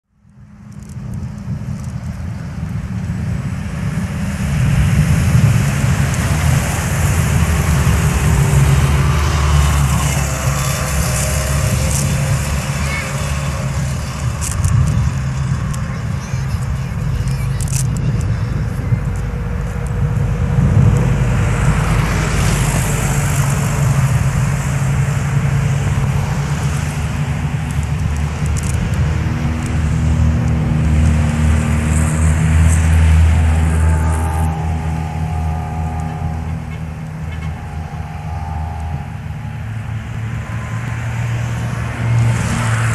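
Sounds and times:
road traffic rumble: 0:00.0 - 0:42.9
faint voices: 0:09.9 - 0:20.2.

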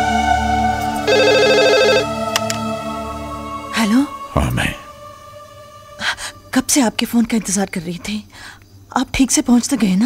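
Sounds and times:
telephone ringing with electronic trill: 0:01.1 - 0:02.1.

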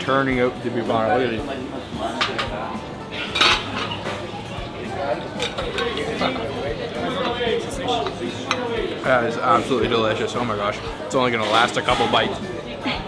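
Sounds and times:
voices: 0:00.0 - 0:13.0
metal utensils clinking on pans: 0:02.1 - 0:10.4, 0:11.2 - 0:12.4.

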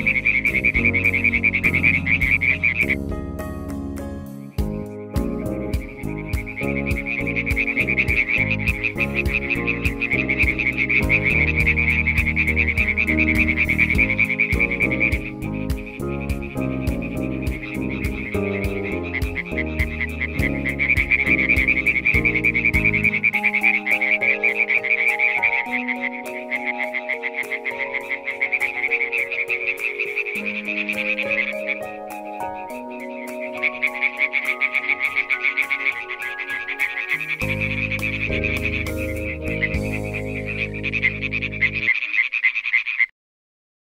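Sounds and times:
tree frog croaking: 0:00.0 - 0:03.4, 0:04.6 - 0:43.1
background music: 0:00.0 - 0:41.9.

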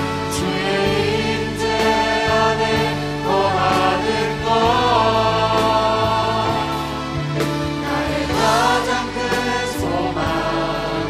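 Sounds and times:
instrumental accompaniment: 0:00.0 - 0:11.0
vocal team singing praise song: 0:00.0 - 0:11.0.

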